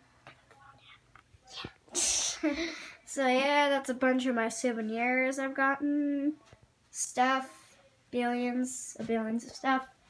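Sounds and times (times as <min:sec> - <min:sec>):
faint whispering: 0:00.3 - 0:02.4.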